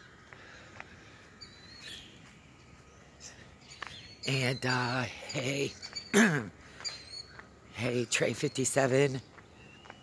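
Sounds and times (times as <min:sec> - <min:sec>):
faint outdoor background noise: 0:00.0 - 0:10.0
small bird chirping: 0:01.4 - 0:10.0.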